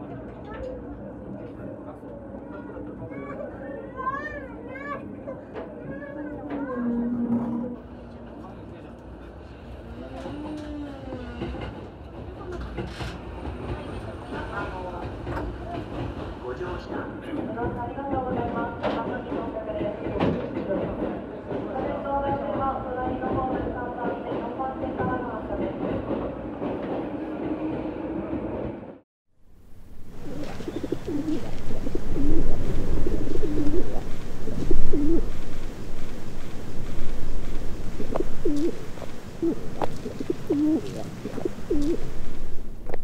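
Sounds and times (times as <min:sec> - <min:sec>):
low outdoor rumble: 0:29.4 - 0:43.0
train running with whine: 0:29.5 - 0:43.0
pigeon cooing: 0:30.0 - 0:42.4.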